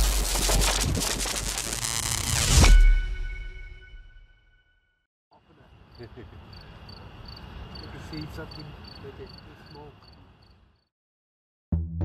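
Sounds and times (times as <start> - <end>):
crackling digital static: 0.0 - 2.7.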